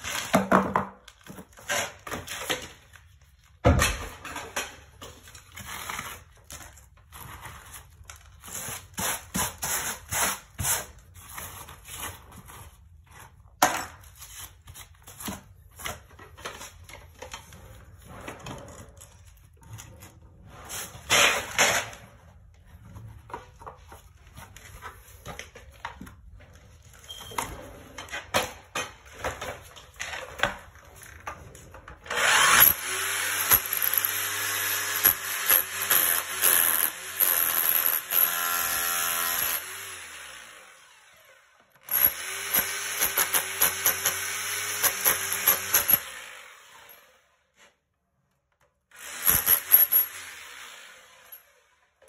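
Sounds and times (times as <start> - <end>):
power tool drilling concrete: 32.1 - 41.2, 41.9 - 47.0, 49.0 - 51.4.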